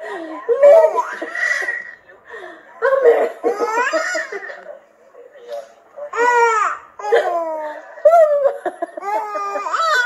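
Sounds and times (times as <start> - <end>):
baby laughing: 0.6 - 1.8, 3.0 - 4.5, 6.2 - 10.0.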